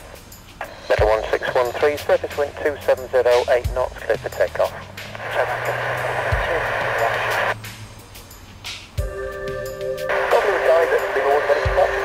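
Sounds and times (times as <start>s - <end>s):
static hiss: 0.0s - 9.1s, 10.1s - 12.0s
garbled radio voice: 0.9s - 7.5s, 10.3s - 12.0s.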